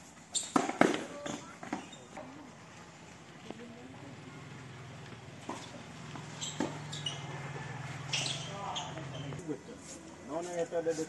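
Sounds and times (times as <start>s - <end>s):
shoes squeaking: 0.3s - 2.3s, 5.1s - 10.6s
tennis ball hit by rackets: 0.4s - 1.9s.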